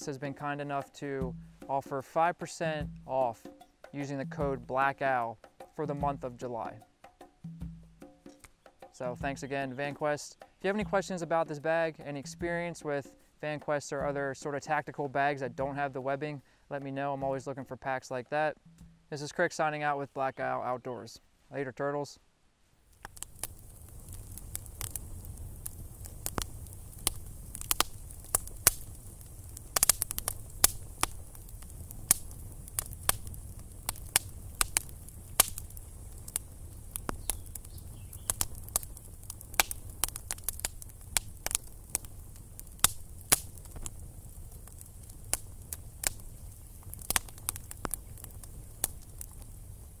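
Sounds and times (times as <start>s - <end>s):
campfire crackling and popping: 0.0s - 16.1s, 22.8s - 50.0s.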